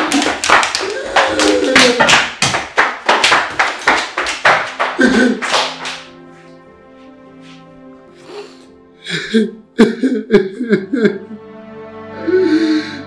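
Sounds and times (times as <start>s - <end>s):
women crying out: 0.8s - 2.2s
quiet background music chords: 4.3s - 13.0s.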